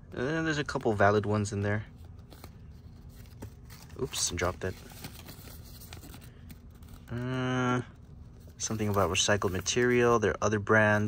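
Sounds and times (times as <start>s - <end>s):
paper leaflet rustling: 0.5s - 11.0s.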